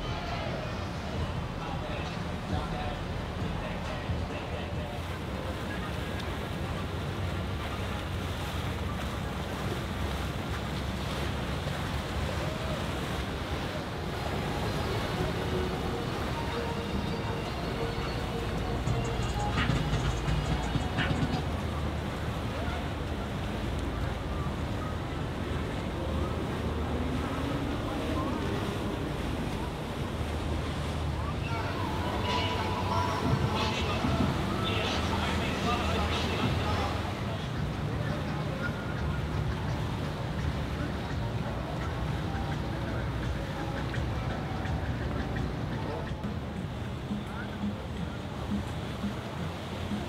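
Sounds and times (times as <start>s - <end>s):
boat wake hissing: 0.0s - 50.0s
outboard engines running: 0.0s - 50.0s.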